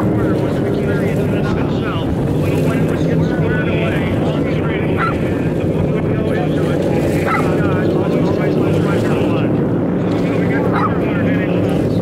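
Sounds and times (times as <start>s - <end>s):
racing boat engines droning: 0.0s - 12.0s.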